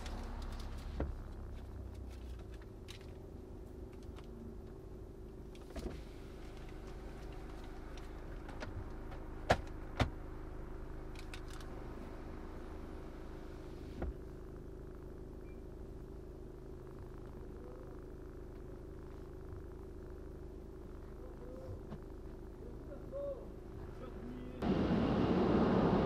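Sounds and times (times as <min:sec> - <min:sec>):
diesel engine running: 0:00.0 - 0:26.0.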